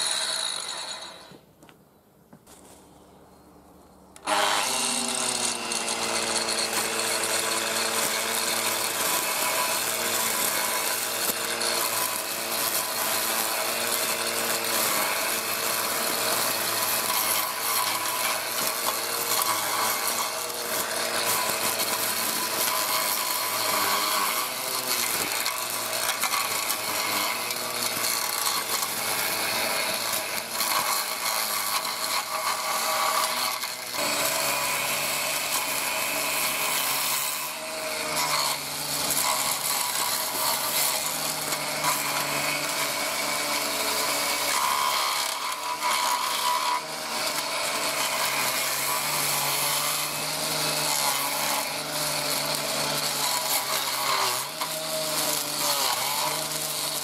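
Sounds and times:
angle grinder motor whine: 0.0s - 1.4s, 4.2s - 57.0s
rasp of cut grass stalks: 4.2s - 57.0s.

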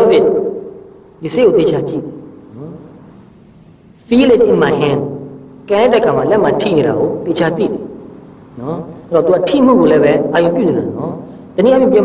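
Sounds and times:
person speaking: 0.0s - 3.1s, 4.0s - 12.0s
low background hiss: 0.0s - 12.0s.

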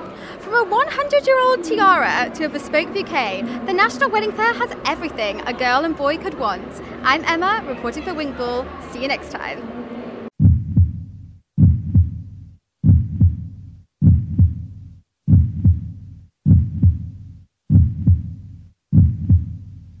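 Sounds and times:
heartbeat thumps: 10.4s - 20.0s.

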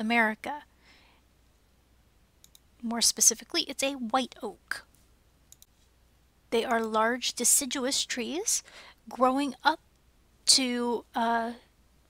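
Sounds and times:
woman speaking: 0.0s - 0.7s, 2.8s - 4.9s, 6.5s - 9.8s, 10.5s - 11.7s
low steady hum: 0.0s - 12.0s
faint clicks: 2.4s - 2.7s, 4.9s - 5.8s.

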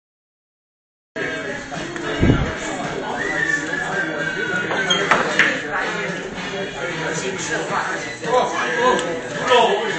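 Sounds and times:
background voices: 1.2s - 9.9s.

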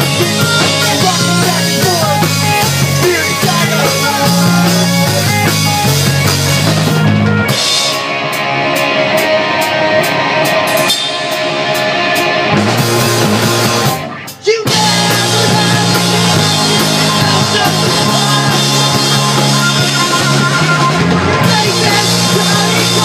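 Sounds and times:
rock band playing live: 0.0s - 23.0s.

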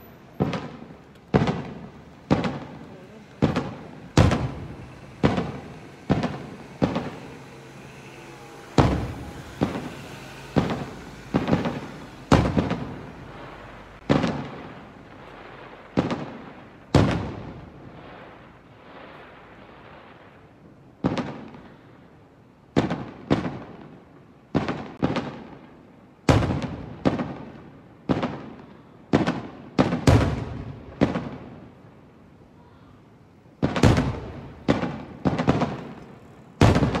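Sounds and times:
firework shells bursting: 0.0s - 17.8s, 33.6s - 37.0s.

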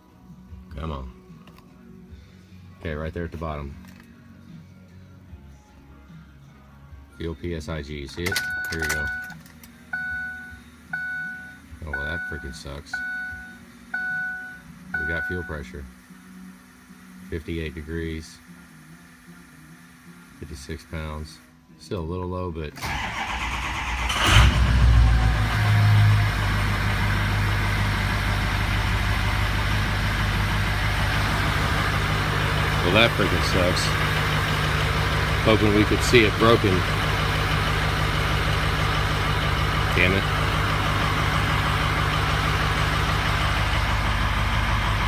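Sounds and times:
diesel engine starting and idling: 8.2s - 15.8s, 22.8s - 45.0s.

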